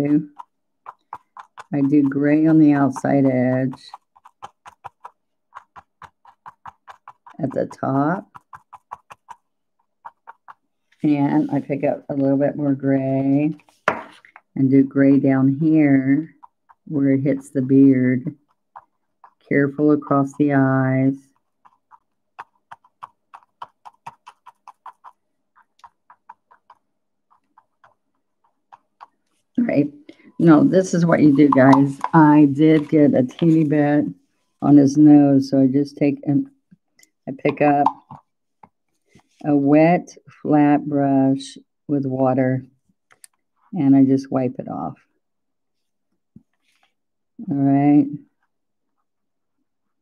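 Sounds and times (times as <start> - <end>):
dry paintbrush tapping: 0.0 - 12.3, 13.4 - 35.2, 37.0 - 39.4
paintbrush tapping on surface: 13.6 - 14.4.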